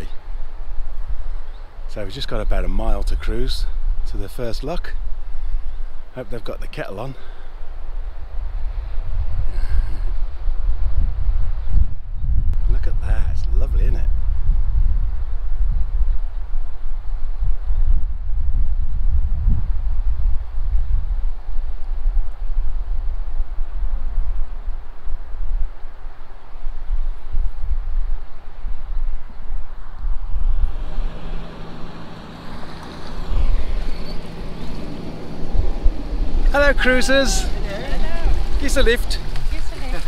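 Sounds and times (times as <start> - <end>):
wind buffeting microphone: 0.0 - 6.7, 7.3 - 40.0
boat engine low note: 30.4 - 40.0.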